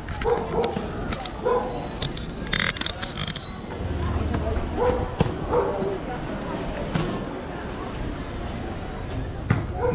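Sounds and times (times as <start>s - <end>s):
voices: 0.0s - 9.9s.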